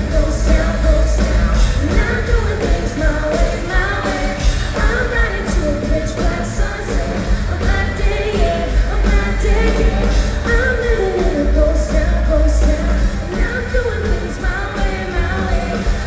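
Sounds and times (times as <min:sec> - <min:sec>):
live rock band playing: 0:00.0 - 0:16.0
woman singing lead: 0:00.0 - 0:16.0.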